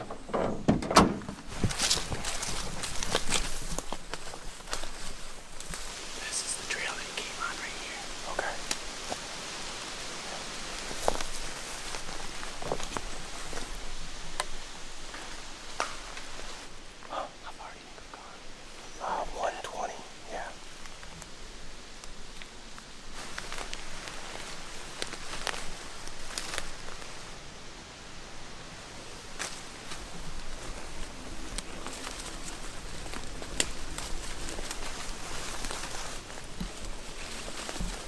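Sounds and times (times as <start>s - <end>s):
footsteps through fallen leaves: 1.4s - 17.0s, 22.2s - 27.4s, 28.9s - 38.0s
twigs snapping: 1.6s - 6.0s, 8.5s - 9.3s, 10.6s - 16.6s, 22.0s - 27.2s, 29.4s - 38.0s
low whispering: 6.1s - 8.7s, 17.0s - 20.8s.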